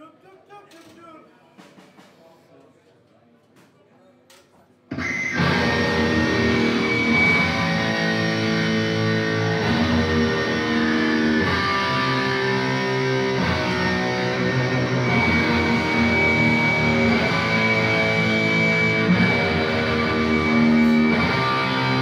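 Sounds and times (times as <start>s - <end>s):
drums: 0.7s - 2.7s, 4.9s - 22.0s
distorted electric guitars: 4.9s - 22.0s.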